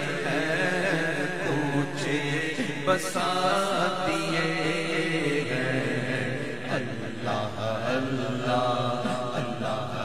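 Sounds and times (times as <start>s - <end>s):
man chanting lead melody: 0.0s - 10.0s.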